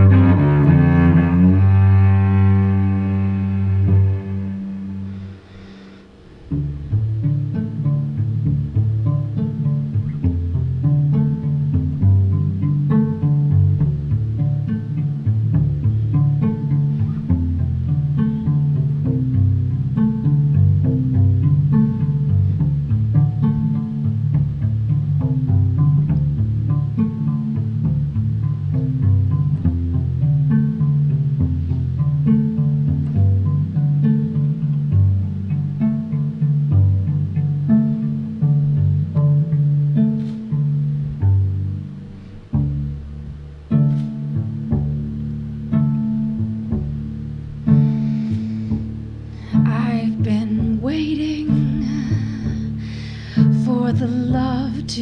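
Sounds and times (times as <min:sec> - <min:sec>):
cello pizzicato: 0:00.0 - 0:55.0.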